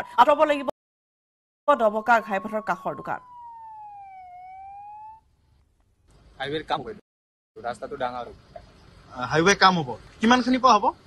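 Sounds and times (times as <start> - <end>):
police siren wailing: 0.0 - 0.7, 1.7 - 5.3.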